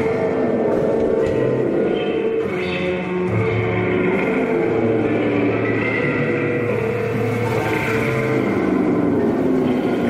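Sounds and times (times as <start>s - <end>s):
band playing droning noise: 0.0s - 10.0s.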